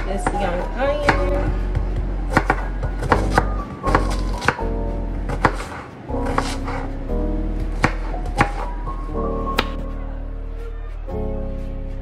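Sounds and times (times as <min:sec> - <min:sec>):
knife chopping onion: 0:00.0 - 0:01.6, 0:02.2 - 0:04.7, 0:05.3 - 0:06.9, 0:07.7 - 0:08.8
background music: 0:00.0 - 0:12.0.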